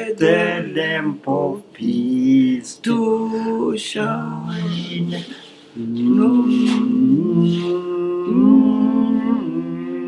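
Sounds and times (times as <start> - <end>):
person humming a slow melody: 1.8 - 10.0.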